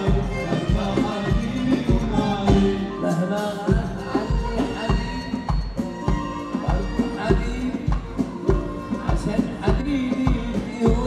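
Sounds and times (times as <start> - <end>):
instrumental band music: 0.0 - 11.0
steady drum beat: 0.0 - 11.0.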